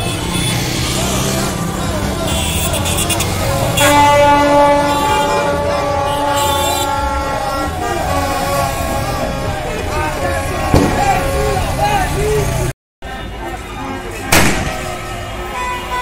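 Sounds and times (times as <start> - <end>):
motorbike engines: 0.0 - 16.0
street crowd shouting: 0.0 - 16.0
horn blast: 2.3 - 11.9, 13.8 - 16.0.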